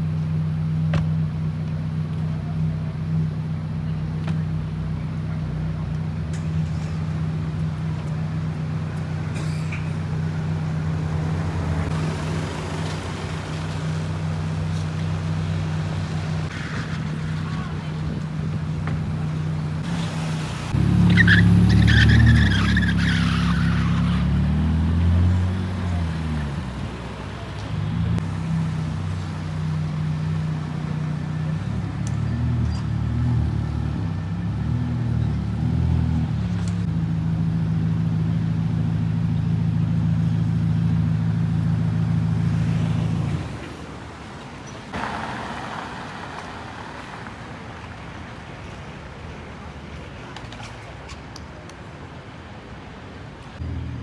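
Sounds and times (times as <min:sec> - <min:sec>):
car engine idling and revving: 0:00.0 - 0:48.8.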